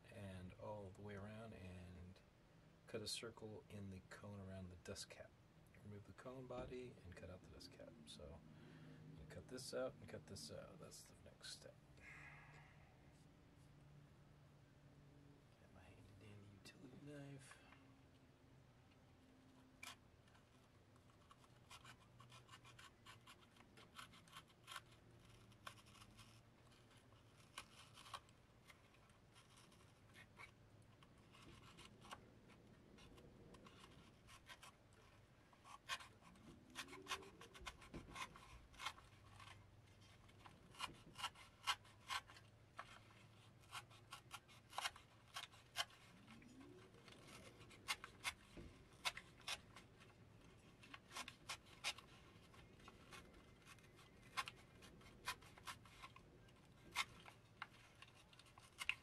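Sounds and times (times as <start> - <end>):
craft knife scratching paper: 19.8 - 59.0.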